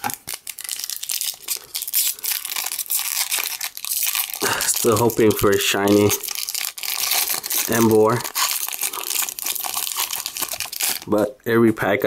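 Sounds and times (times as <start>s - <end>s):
foil wrapper crinkling and tearing: 0.0s - 11.2s.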